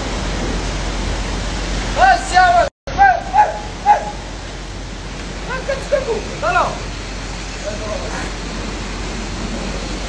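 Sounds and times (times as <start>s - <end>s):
dog yelping: 3.2s - 4.3s.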